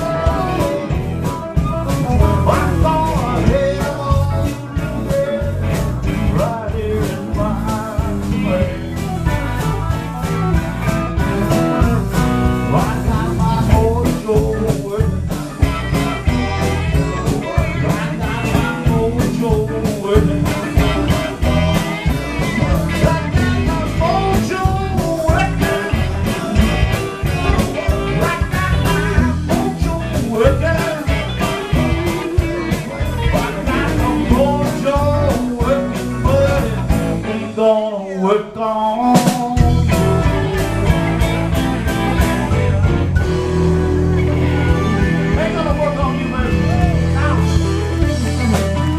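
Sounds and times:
blues harmonica: 0.0 - 37.8, 39.2 - 48.9
electric blues band: 0.0 - 48.9.

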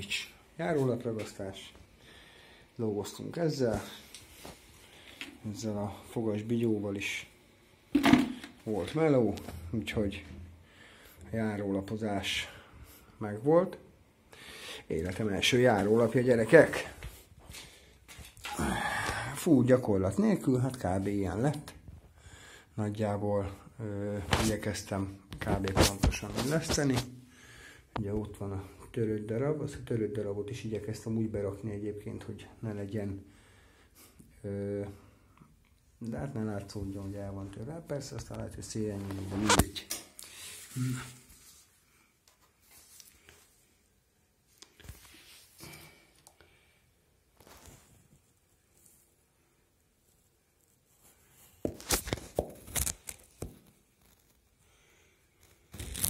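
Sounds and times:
man sighing: 18.4 - 19.4.

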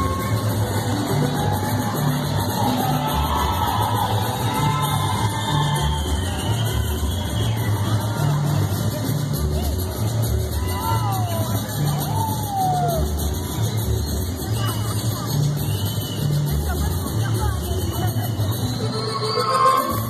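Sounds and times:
crowd voices: 0.0 - 20.0
polka music with bouncing bass: 0.0 - 20.0.

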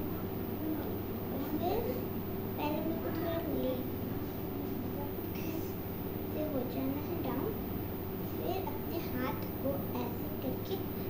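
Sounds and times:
faint voice murmuring: 0.0 - 5.8
steady background hum: 0.0 - 11.0.

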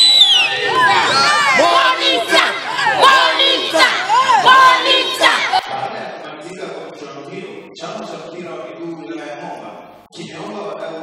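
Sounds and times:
crowd shouting and cheering: 0.0 - 6.1.

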